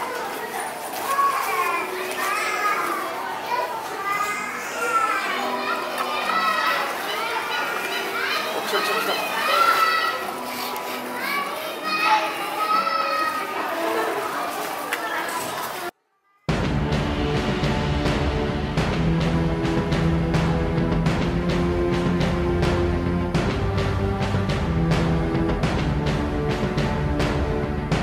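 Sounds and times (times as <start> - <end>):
adults talking: 0.0 - 16.0
children chattering and calling out: 0.0 - 16.5.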